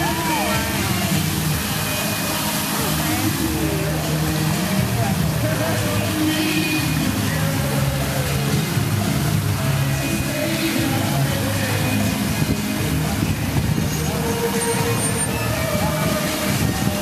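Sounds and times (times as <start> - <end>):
fountain show music: 0.0 - 17.0
rush of fountain spray: 0.0 - 17.0.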